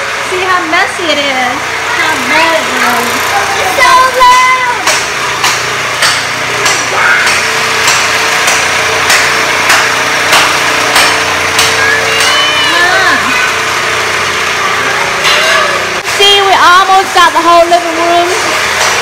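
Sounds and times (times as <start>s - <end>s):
small motor running: 0.0s - 19.0s
sharp tool knocks: 4.8s - 12.3s.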